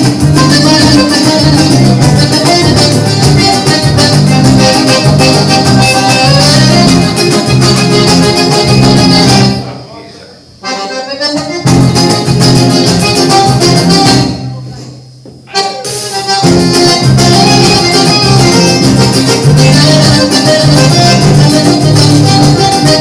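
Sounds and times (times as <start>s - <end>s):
accordion: 0.0s - 9.8s, 10.6s - 14.9s, 15.5s - 23.0s
acoustic guitar: 0.0s - 9.8s, 10.6s - 23.0s
bass: 0.0s - 9.8s, 11.3s - 14.7s, 16.2s - 23.0s
pandeiro: 0.0s - 9.9s, 10.6s - 23.0s.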